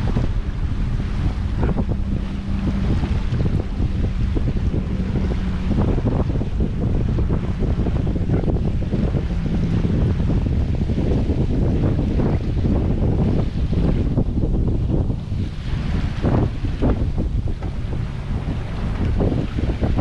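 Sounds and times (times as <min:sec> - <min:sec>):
water washing along hull: 0:00.0 - 0:20.0
wind on microphone: 0:00.0 - 0:20.0.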